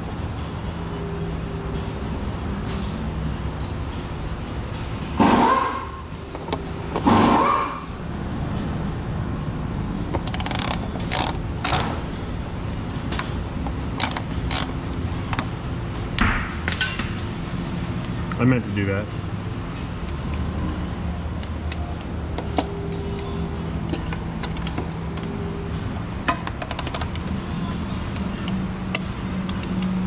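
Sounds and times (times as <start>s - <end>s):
steady background hum: 0.0s - 30.0s.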